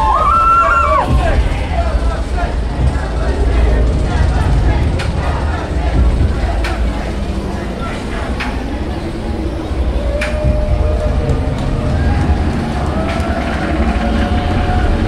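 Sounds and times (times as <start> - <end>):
deep steady rumble: 0.0 - 15.0
riders' voices: 0.0 - 15.0.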